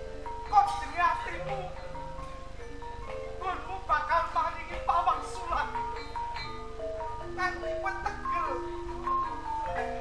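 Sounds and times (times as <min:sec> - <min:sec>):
metal mallet instruments melody: 0:00.0 - 0:10.0.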